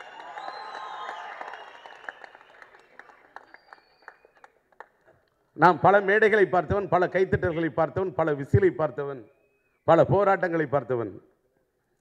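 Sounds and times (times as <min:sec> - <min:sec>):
audience applause: 0:00.0 - 0:05.0.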